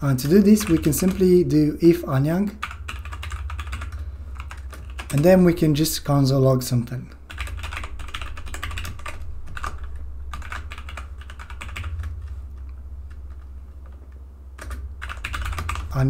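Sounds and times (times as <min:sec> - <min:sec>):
typing on computer keyboard: 0:00.2 - 0:01.3, 0:02.6 - 0:05.3, 0:07.3 - 0:12.3, 0:14.6 - 0:16.0.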